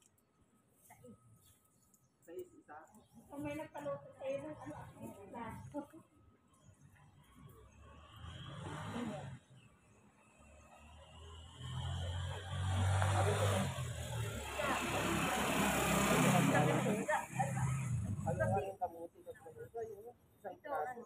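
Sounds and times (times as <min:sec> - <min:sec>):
people's voices: 0:02.3 - 0:06.2, 0:08.6 - 0:09.4, 0:12.8 - 0:21.0
vehicle passing by: 0:07.2 - 0:18.8.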